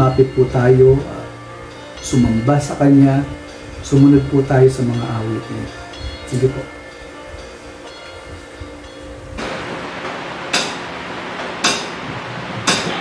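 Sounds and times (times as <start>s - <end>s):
faint background music: 0.0s - 10.0s
band room noise: 0.0s - 13.0s.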